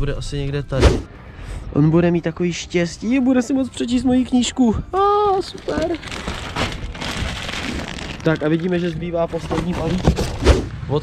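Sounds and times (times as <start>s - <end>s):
plastic bag crinkling: 5.4s - 10.4s.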